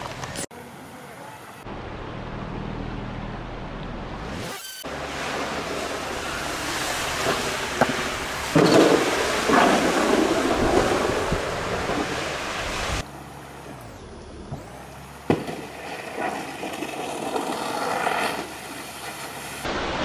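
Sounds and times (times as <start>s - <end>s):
wakeboard spray: 4.4s - 13.1s, 15.3s - 20.0s
water rushing down spillway: 4.9s - 13.0s
wind on microphone: 9.4s - 13.0s.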